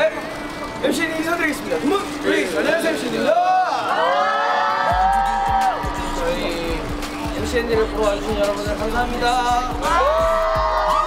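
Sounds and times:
crowd cheering and screaming: 3.2 - 7.7, 9.7 - 11.0.

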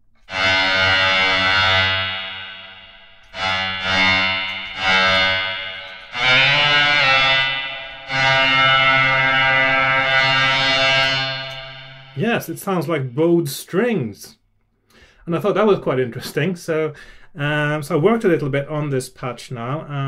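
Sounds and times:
synthesized bowed string notes: 0.0 - 13.1.

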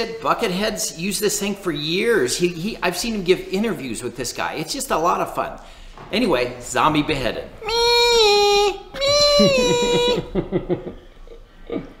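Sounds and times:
man chuckling: 7.7 - 12.0.

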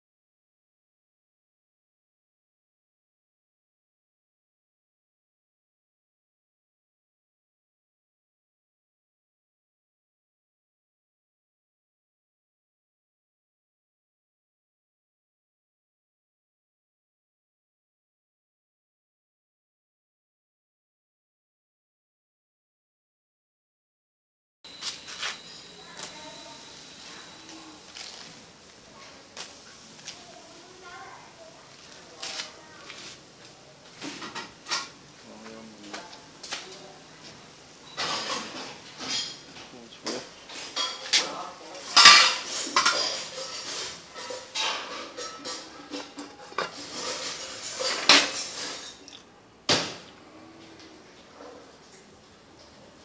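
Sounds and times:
water boiling in a pot: 24.7 - 50.2
metal clinking on pot: 41.9 - 49.0.

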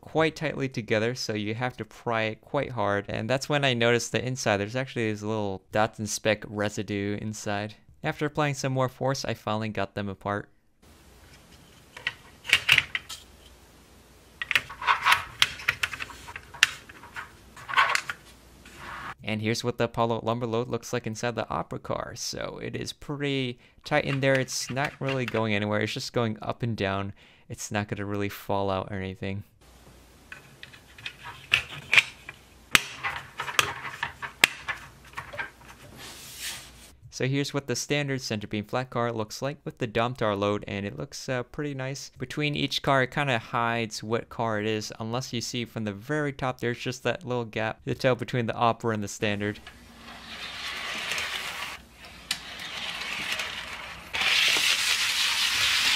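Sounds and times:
plastic model parts clicking: 14.4 - 18.2
soft rustle: 34.9 - 37.0.

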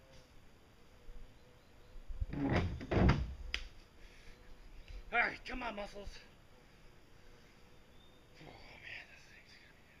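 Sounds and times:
dull knocks and scraping: 2.3 - 3.4.

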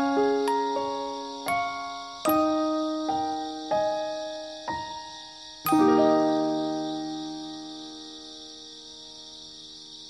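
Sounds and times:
slow solo piano music: 0.0 - 9.2.

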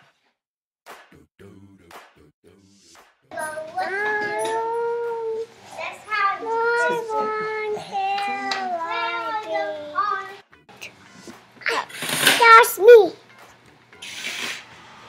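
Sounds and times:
young child singing: 3.3 - 10.4.

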